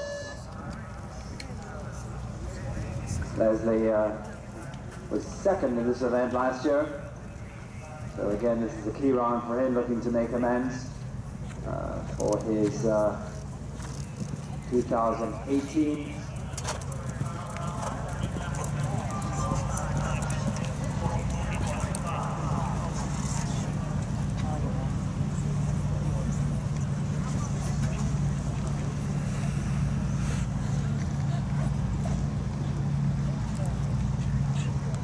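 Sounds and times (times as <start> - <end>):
faint voices: 0.0 - 35.0
steady low hum: 0.0 - 35.0
horse hoofbeats on sand: 11.4 - 23.3.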